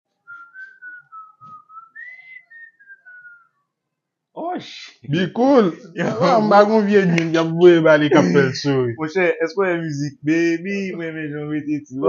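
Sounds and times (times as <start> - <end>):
man whistling a tune: 0.3 - 3.6.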